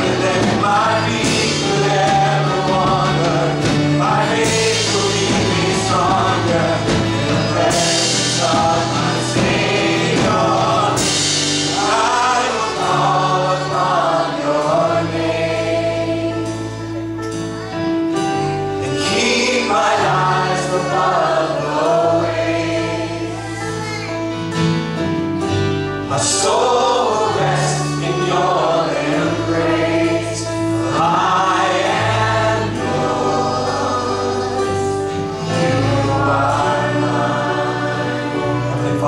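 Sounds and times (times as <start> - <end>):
voices singing together: 0.0 - 17.1, 18.8 - 24.0, 26.1 - 39.0
guitars and keyboard: 0.0 - 39.0
held bass notes: 0.0 - 39.0.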